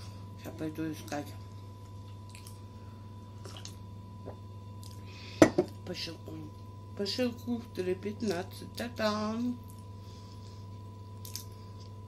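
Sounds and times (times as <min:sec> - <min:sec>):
person chewing: 0:01.8 - 0:02.7, 0:03.4 - 0:03.8, 0:04.8 - 0:05.1, 0:09.6 - 0:12.0.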